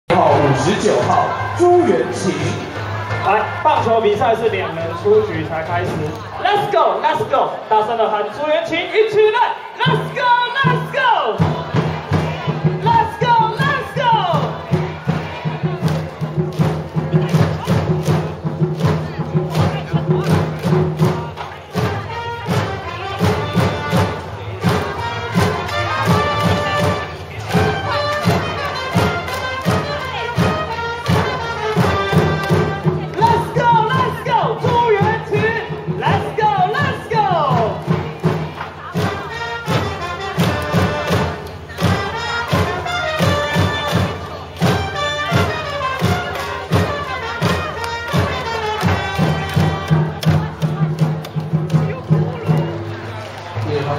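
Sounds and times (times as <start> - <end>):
steady drum beat: 0.1 - 7.3, 9.8 - 53.2
cheer song music: 0.1 - 53.9
crowd singing and chanting: 0.1 - 53.9.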